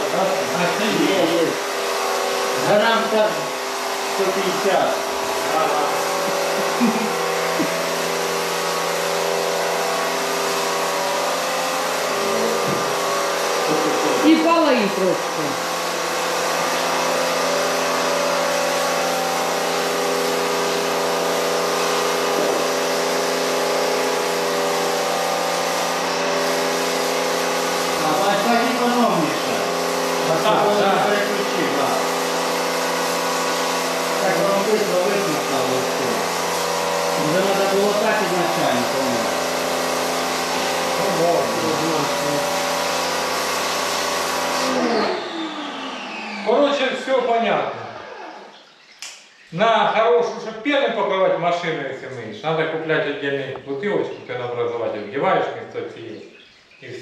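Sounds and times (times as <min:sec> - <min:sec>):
water jet hissing: 0:00.0 - 0:48.5
pressure washer pump humming: 0:00.0 - 0:55.3.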